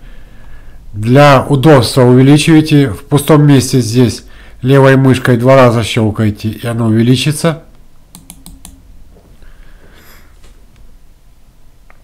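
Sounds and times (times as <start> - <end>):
mouse button clicking: 8.1 - 8.8.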